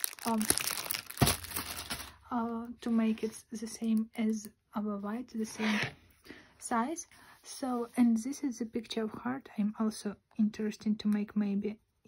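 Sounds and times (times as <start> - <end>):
plastic wrapping crinkling: 0.0 - 2.2.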